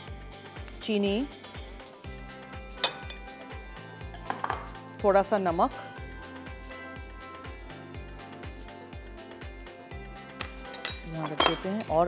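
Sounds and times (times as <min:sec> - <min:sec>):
background music with steady beat: 0:00.0 - 0:12.0
ceramic bowl clinking on glass: 0:10.7 - 0:12.0.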